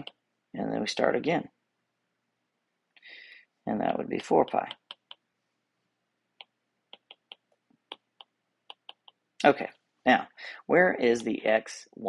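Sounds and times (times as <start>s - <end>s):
stylus tapping on tablet screen: 4.3s - 5.3s, 6.4s - 9.3s.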